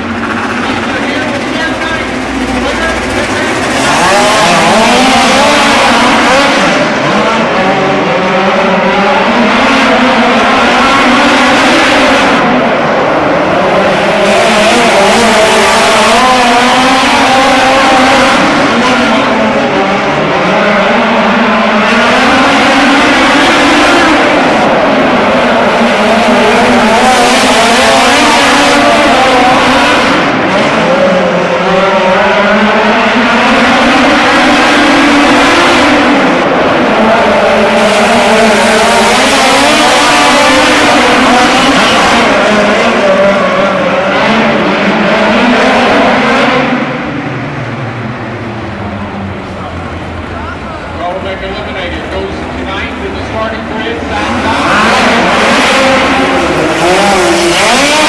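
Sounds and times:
race car engines running hard: 0.0 - 58.0.

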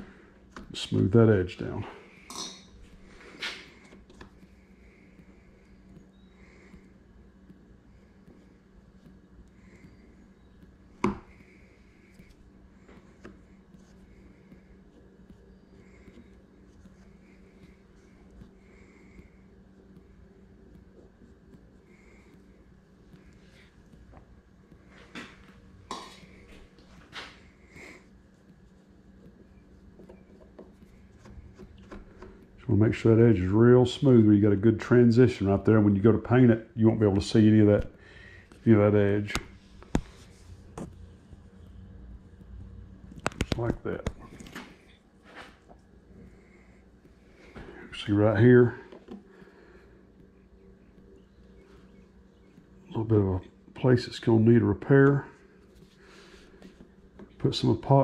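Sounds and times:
faint steady hum: 0.0 - 58.0
sculpting tool ticking and rubbing: 3.7 - 25.0, 25.6 - 33.2.

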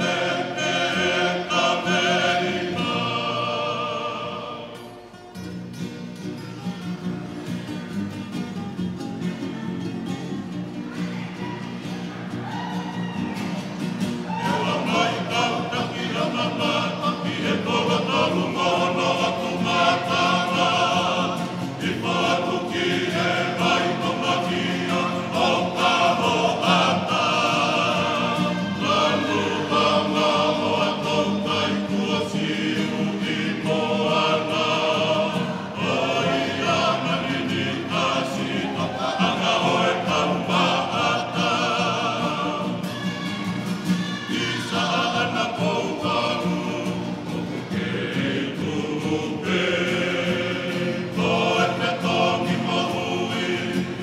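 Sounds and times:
choir singing in harmony: 0.0 - 5.2, 11.4 - 54.0.

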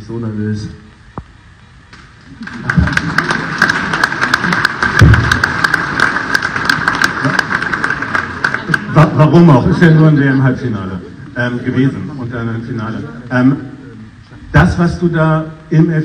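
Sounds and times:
people applauding: 2.2 - 10.0
low thump: 5.0 - 5.5.

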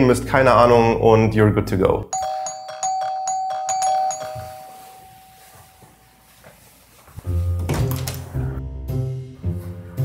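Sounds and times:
doorbell chime ringing: 2.1 - 6.4.

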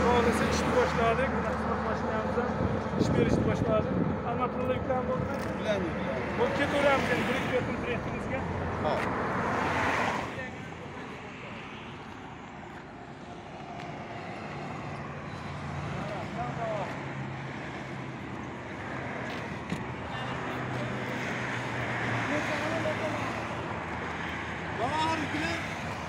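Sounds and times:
road traffic noise: 0.0 - 26.0
vehicle engine hum: 0.0 - 26.0.

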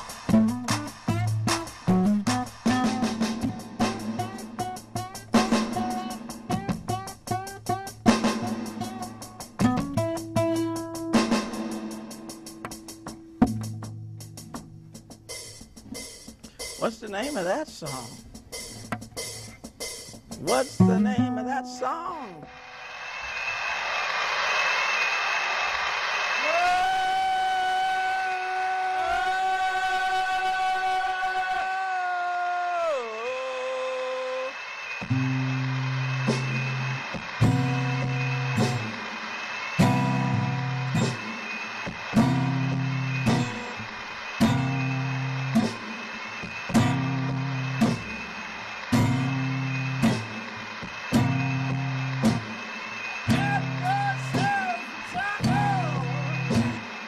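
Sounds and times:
acoustic guitar: 0.0 - 17.7, 18.8 - 22.7, 34.4 - 57.0.

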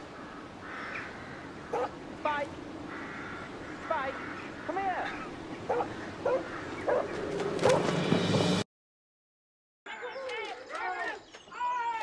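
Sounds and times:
crow cawing: 0.0 - 2.0, 2.8 - 7.0
faint outdoor background: 0.0 - 8.6, 9.9 - 12.0.

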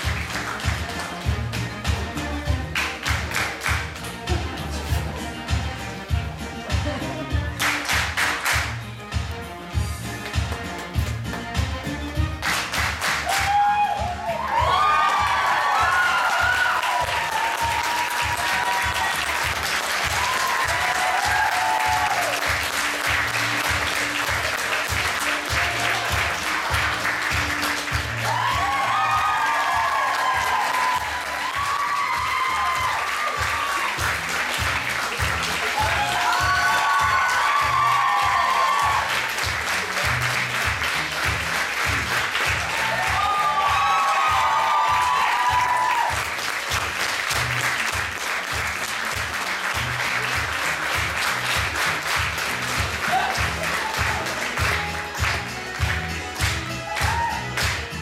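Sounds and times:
audience applauding: 0.0 - 4.7, 7.6 - 8.8, 12.4 - 58.0
music with steady beat: 0.0 - 58.0.

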